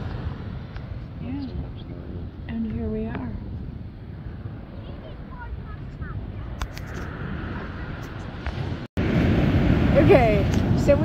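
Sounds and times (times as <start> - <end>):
big waves breaking: 0.0 - 11.0
surf washing on sandy beach: 0.0 - 11.0
wind on microphone: 0.0 - 11.0.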